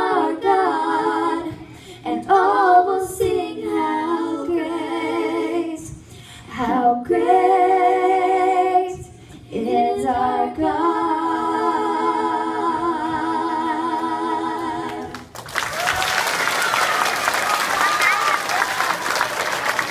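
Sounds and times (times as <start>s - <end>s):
woman and girls singing: 0.0s - 15.3s
audience applause: 15.3s - 19.9s.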